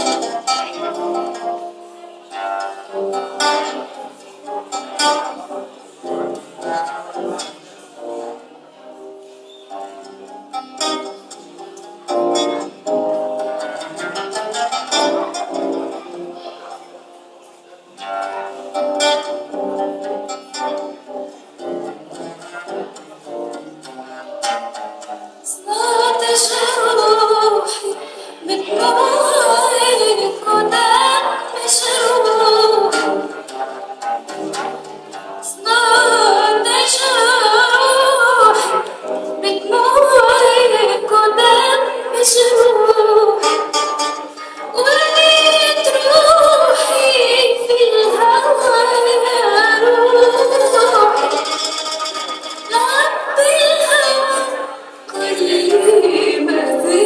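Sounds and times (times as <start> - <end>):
cello: 0.0 - 54.4
acoustic guitars playing: 0.0 - 57.0
woman singing: 25.5 - 33.3, 35.4 - 51.5, 52.6 - 57.0.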